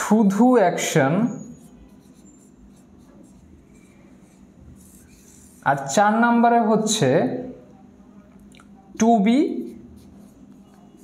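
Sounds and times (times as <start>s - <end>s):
marker squeaks: 1.3s - 5.6s
marker scratching on whiteboard: 1.3s - 6.0s, 9.5s - 11.0s.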